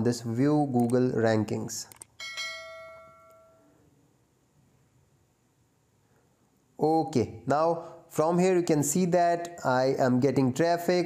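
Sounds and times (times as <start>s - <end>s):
bell-like chime: 2.2s - 3.7s.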